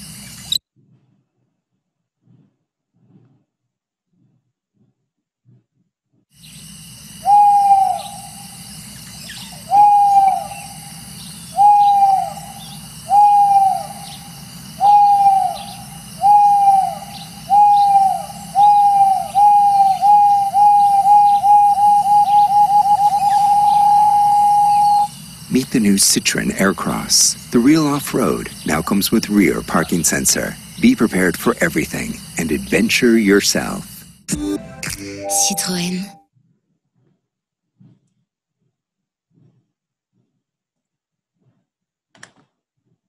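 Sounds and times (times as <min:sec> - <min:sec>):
faint night-time background: 0:06.3 - 0:36.2
owl hoots: 0:06.4 - 0:34.0.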